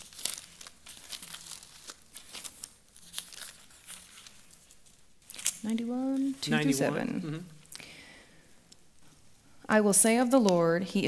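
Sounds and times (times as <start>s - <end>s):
thin pages being turned: 0.0s - 6.4s.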